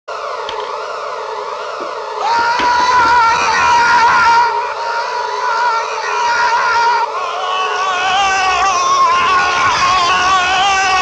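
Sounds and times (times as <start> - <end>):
siren-like wailing tone: 0.1 - 11.0
steady droning band: 0.1 - 11.0.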